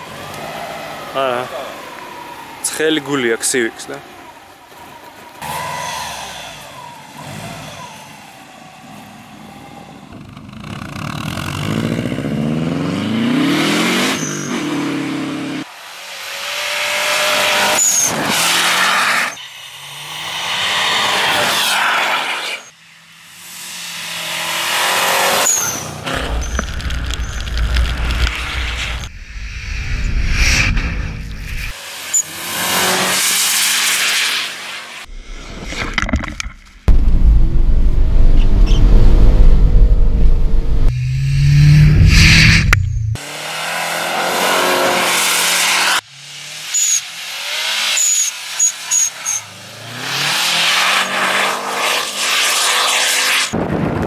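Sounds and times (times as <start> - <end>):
car engine revving hard: 5.4 - 8.6, 11.1 - 22.3, 23.7 - 29.0, 31.7 - 34.5, 39.0 - 53.5
tyres rushing and snow spraying: 13.2 - 22.7, 23.5 - 29.1, 30.6 - 36.0, 43.2 - 53.6.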